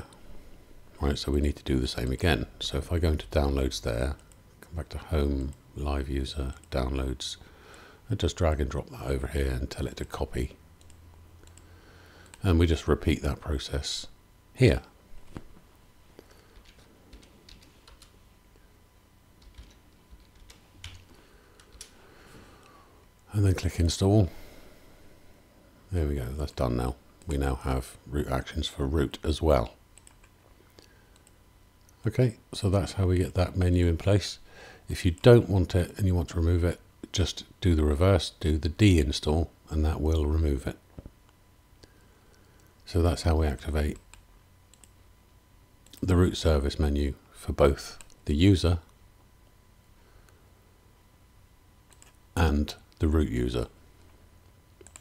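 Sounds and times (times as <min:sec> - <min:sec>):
sharp clicks: 0:10.8 - 0:12.4, 0:30.0 - 0:30.4, 0:44.0 - 0:45.0, 0:51.9 - 0:52.2, 0:54.8 - 0:55.0
person speaking: 0:12.3 - 0:15.0, 0:23.2 - 0:24.7, 0:25.9 - 0:29.8, 0:52.3 - 0:53.8.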